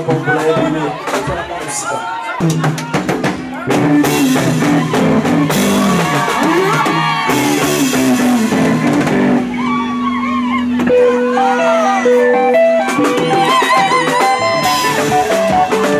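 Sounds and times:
drum kit: 0.0s - 15.9s
bass guitar: 2.4s - 15.9s
lead electric guitar: 3.6s - 15.9s.

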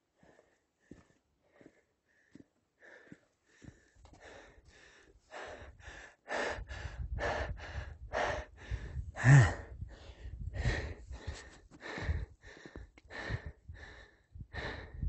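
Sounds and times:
man panting: 0.2s - 15.0s
man gasping: 1.6s - 15.0s.

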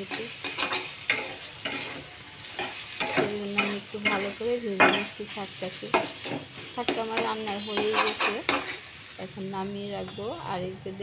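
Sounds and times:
metal spatula scraping pan: 0.0s - 9.0s
greens sizzling in oil: 0.0s - 10.6s.

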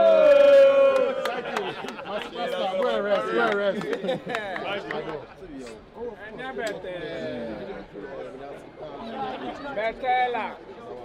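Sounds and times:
overlapping voices chattering: 0.4s - 11.0s.

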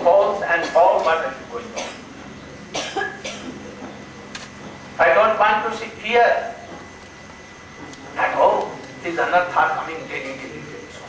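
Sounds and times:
person coughing: 1.8s - 2.1s, 2.7s - 3.6s.

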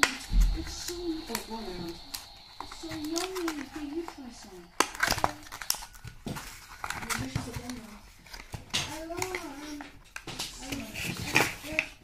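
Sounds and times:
person talking: 0.0s - 5.6s
cardboard and foam packaging crinkling: 2.3s - 12.0s.

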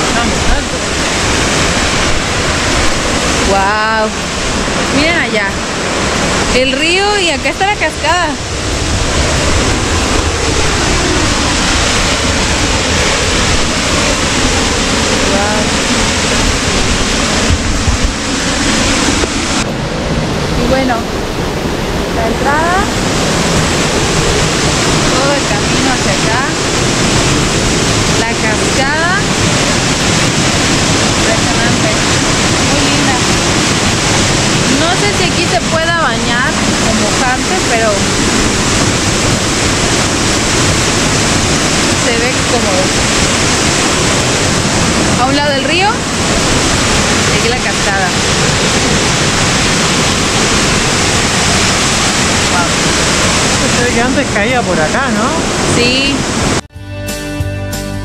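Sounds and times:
waterfall rushing: 0.0s - 56.6s.

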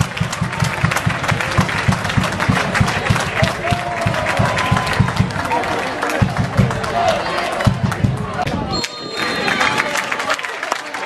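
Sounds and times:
crowd noise: 0.0s - 11.0s
spectators clapping: 0.0s - 11.0s.

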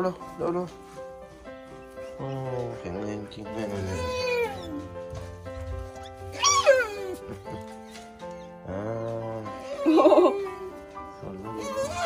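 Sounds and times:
background music: 0.0s - 12.0s
rat squealing: 2.0s - 3.0s, 3.6s - 4.9s, 6.0s - 10.6s, 11.4s - 12.0s.

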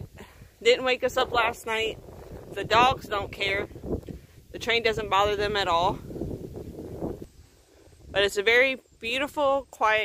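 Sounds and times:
wind rumble on microphone: 0.0s - 9.7s.

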